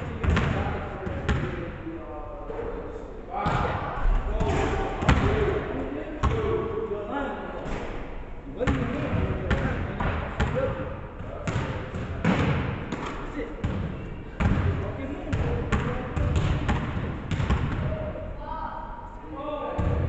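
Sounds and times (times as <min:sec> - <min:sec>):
basketballs bouncing on wooden floor: 0:00.2 - 0:01.6, 0:04.4 - 0:05.5, 0:06.2 - 0:06.5, 0:08.7 - 0:18.0.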